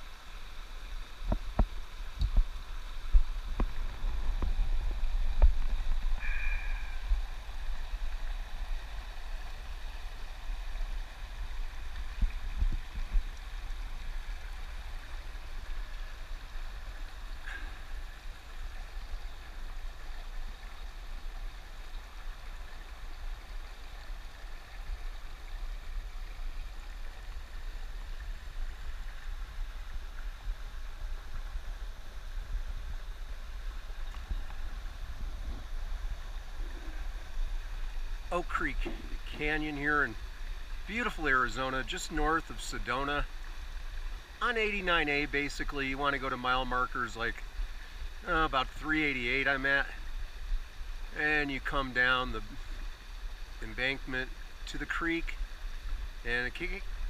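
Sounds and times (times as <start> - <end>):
stream gurgling over rocks: 0.0 - 57.0
microphone handling rumble and thumps: 1.2 - 7.9, 12.0 - 13.5, 32.3 - 40.2.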